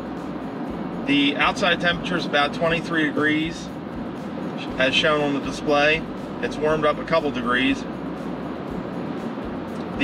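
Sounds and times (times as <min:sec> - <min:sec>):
road and tyre noise: 0:00.0 - 0:10.0.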